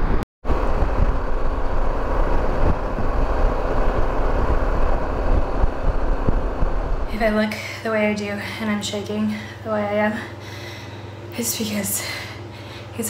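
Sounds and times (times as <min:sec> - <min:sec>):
motorcycle engine at speed: 0:00.0 - 0:07.1
wind buffeting microphone: 0:00.0 - 0:07.6.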